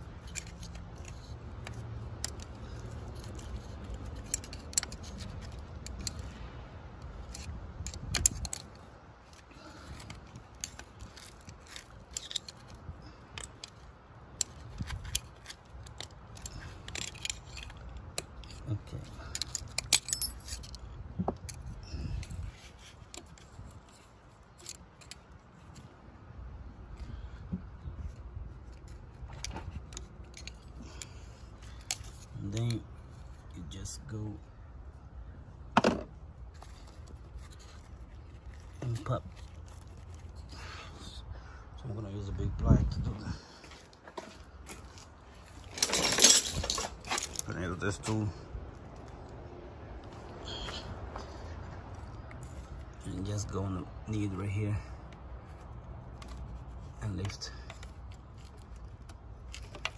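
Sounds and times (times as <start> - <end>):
pliers clicking and scraping metal: 0.0 - 26.0, 28.0 - 33.5, 36.5 - 40.8, 55.0 - 59.9.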